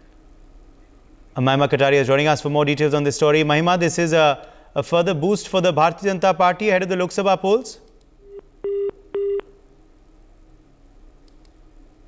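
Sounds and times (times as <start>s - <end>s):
telephone line beeps: 8.2s - 9.6s.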